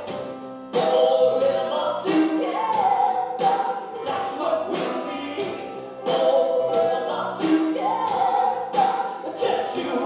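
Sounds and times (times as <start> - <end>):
drums: 0.0 - 10.0
keyboard: 0.0 - 10.0.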